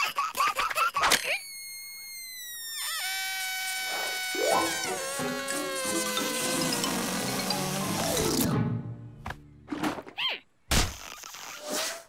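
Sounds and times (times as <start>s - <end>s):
cartoon whistling deflation tone: 1.5s - 8.2s.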